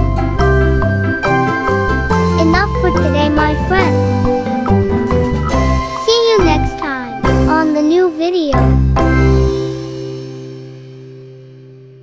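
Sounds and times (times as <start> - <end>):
cheerful children's music: 0.0 - 10.2.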